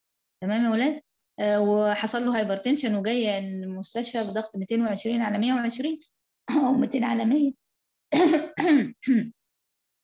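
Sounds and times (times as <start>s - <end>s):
person clearing throat: 8.2s - 9.4s.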